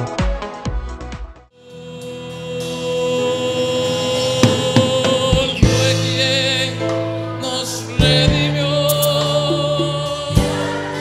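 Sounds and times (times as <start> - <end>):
drum hits: 4.4 - 6.6.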